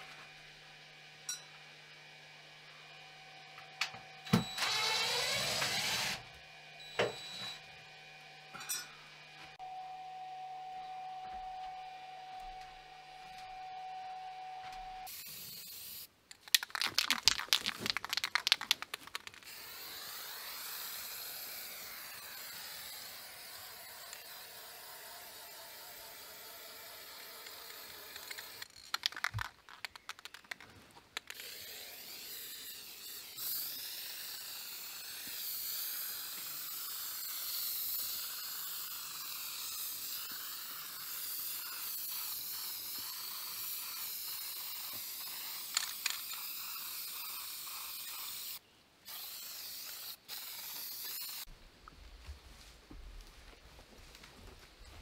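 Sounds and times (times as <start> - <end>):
spray paint can hissing: 15.0 - 30.6, 31.2 - 51.5
sharp clicks: 16.3 - 19.5.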